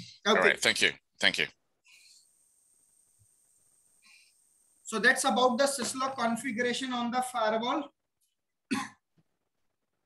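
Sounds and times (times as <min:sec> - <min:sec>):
man coughing: 0:08.7 - 0:09.0.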